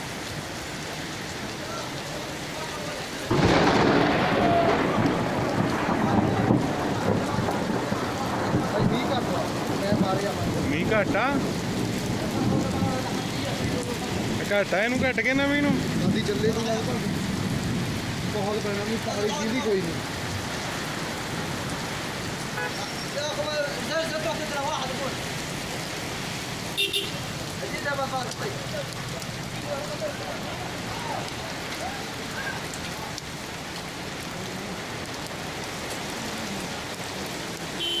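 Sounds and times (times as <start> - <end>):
heavy rain on wet paving: 0.0 - 38.0.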